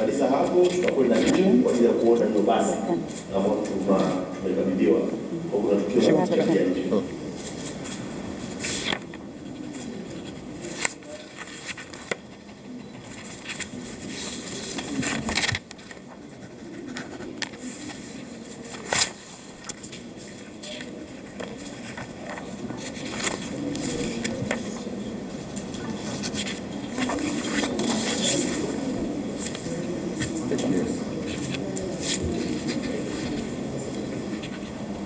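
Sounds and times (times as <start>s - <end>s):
murmur of voices: 0.0s - 35.0s
pens scratching on paper: 0.3s - 2.4s, 7.4s - 34.8s
pages rustling: 0.4s - 2.3s, 7.4s - 12.4s, 13.0s - 24.8s, 25.4s - 33.6s.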